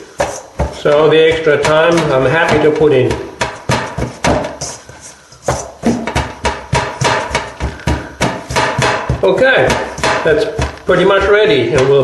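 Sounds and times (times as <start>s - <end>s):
hands punching dough in metal bowl: 0.0s - 12.0s.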